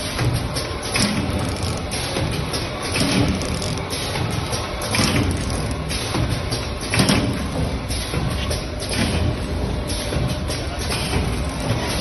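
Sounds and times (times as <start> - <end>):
packing machine clattering: 2.8 - 7.6.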